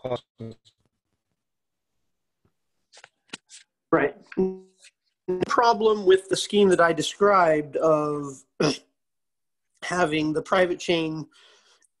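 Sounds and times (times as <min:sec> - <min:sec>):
person speaking: 0:02.9 - 0:08.8.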